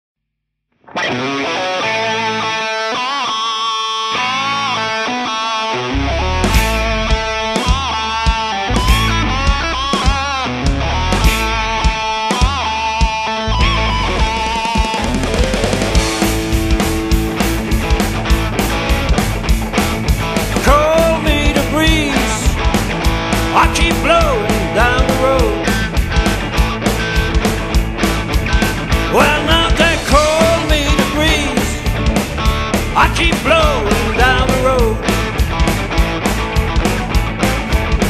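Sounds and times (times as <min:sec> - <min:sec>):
electric guitar: 0:00.8 - 0:38.0
rock band playing: 0:00.8 - 0:38.0
drums: 0:01.0 - 0:38.0.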